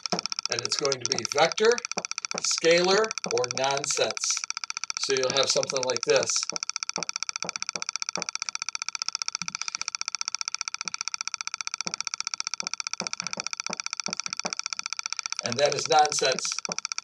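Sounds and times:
steady high buzz with flutter: 0:00.0 - 0:17.0.

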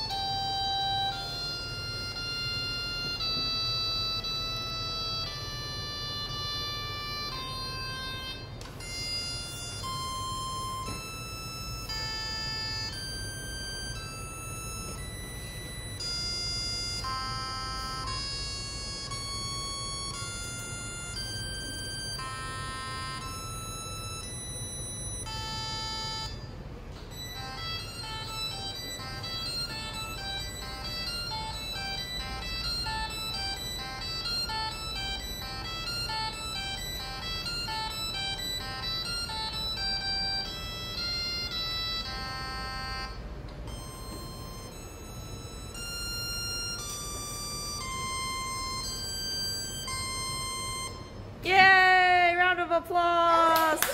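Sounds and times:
electronic beep melody: 0:00.0 - 0:51.3.

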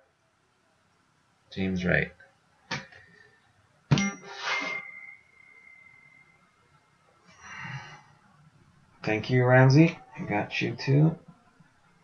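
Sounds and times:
high bell-like ding: 0:03.9 - 0:06.4.

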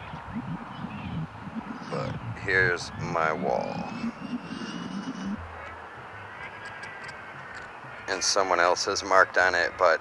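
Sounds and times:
low rumble: 0:00.0 - 0:05.4
faint high whine: 0:00.0 - 0:05.5
distant engine noise: 0:00.0 - 0:10.0.

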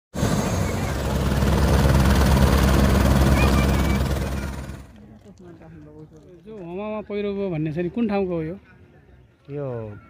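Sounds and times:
helicopter engine: 0:00.2 - 0:05.0
helicopter rotor beating: 0:00.2 - 0:05.0.

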